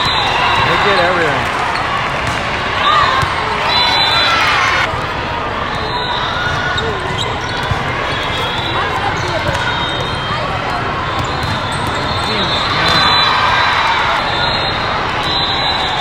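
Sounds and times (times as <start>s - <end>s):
volleyballs struck and bouncing: 0.0s - 3.6s, 9.1s - 13.3s
many voices talking and calling: 0.0s - 16.0s.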